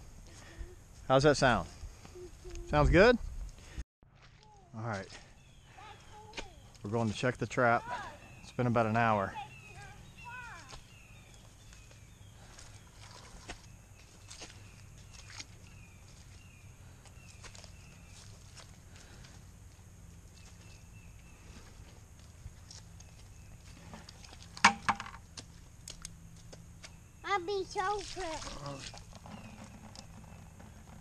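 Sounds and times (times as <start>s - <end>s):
footsteps crunching through dry leaves: 10.5s - 19.5s.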